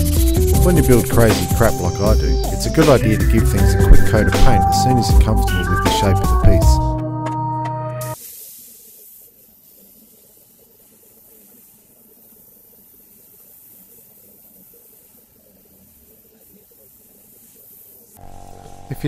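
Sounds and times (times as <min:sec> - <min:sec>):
spray paint hissing: 0:00.0 - 0:04.6, 0:08.2 - 0:19.0.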